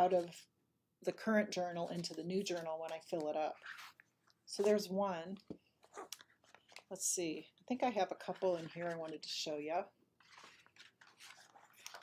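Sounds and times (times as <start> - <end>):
paper pages turning: 1.8 - 4.9, 5.8 - 7.0, 8.2 - 9.4, 10.2 - 12.0.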